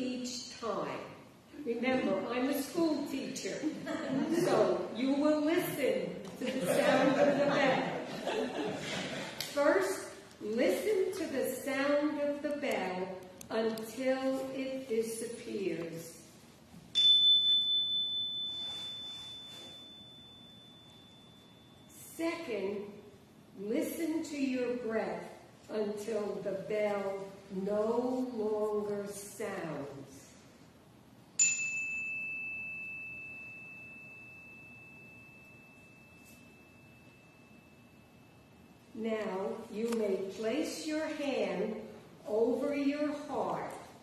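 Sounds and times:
small chime ringing: 16.9 - 22.0, 31.4 - 39.0.

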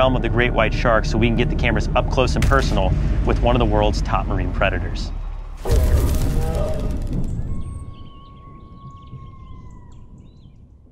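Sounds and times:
deep booming hit: 2.4 - 9.9
bird-like chirps: 5.1 - 10.7.

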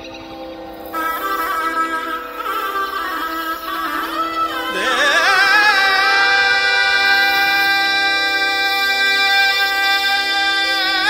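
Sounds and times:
ornamented melody over drone: 0.0 - 11.0.

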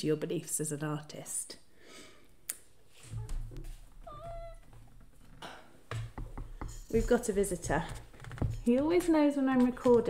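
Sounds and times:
cat meowing: 4.0 - 4.7.

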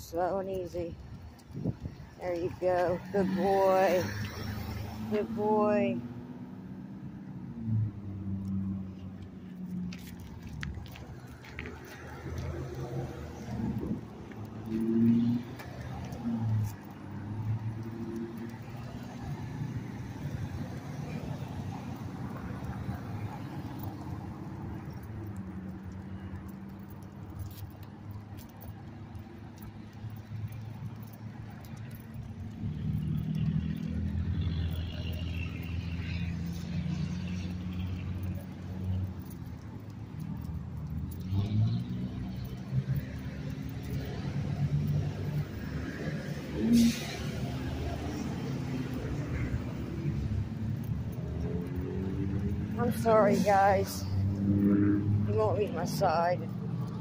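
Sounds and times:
street traffic engine hum: 0.0 - 57.0.

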